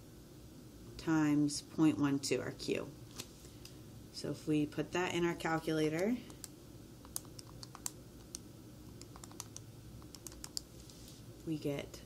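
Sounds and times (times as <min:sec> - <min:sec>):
calculator keys clicking: 0:06.3 - 0:08.4, 0:09.0 - 0:10.7.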